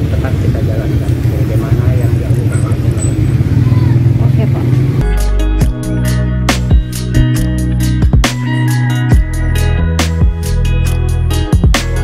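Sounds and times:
faint voices: 0:00.0 - 0:05.0.

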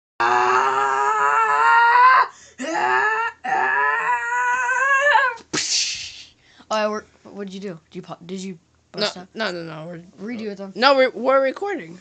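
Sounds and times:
boy yelling: 0:02.9 - 0:05.4.

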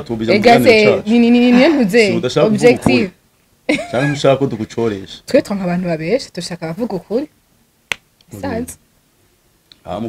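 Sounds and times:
person speaking: 0:00.2 - 0:03.2, 0:08.3 - 0:08.8.

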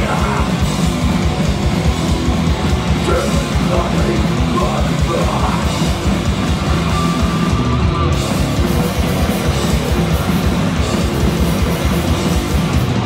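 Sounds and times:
live punk band playing: 0:00.0 - 0:13.0.

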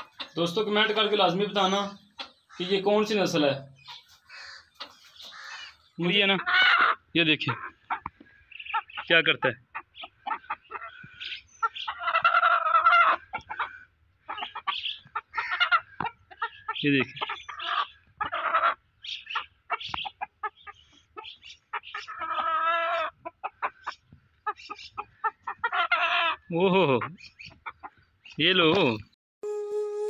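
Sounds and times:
rooster and hen clucking: 0:00.0 - 0:02.8, 0:03.8 - 0:28.1
chicken drawn-out calls: 0:00.0 - 0:28.0.

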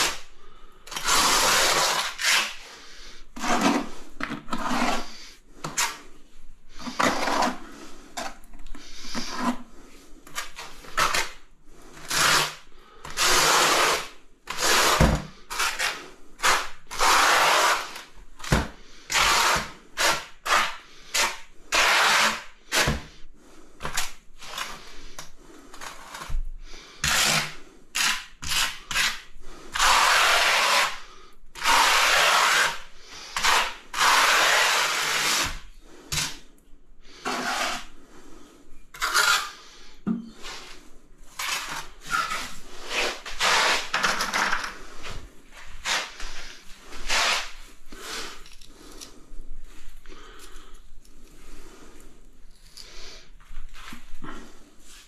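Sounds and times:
trowel scraping wet mortar: 0:00.9 - 0:02.7, 0:03.4 - 0:06.0, 0:06.8 - 0:07.8, 0:12.0 - 0:18.1, 0:19.1 - 0:23.0, 0:27.0 - 0:36.4, 0:37.2 - 0:37.9, 0:39.0 - 0:44.3.

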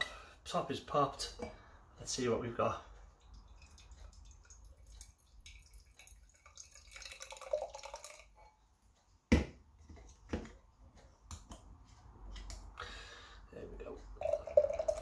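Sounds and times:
beer pouring into a glass: 0:03.6 - 0:08.4, 0:14.2 - 0:15.0.

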